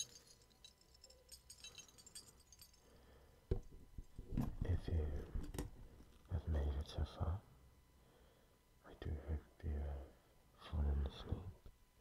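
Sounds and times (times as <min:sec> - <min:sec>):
man whispering: 0:04.6 - 0:05.5, 0:06.3 - 0:07.6, 0:08.8 - 0:11.6.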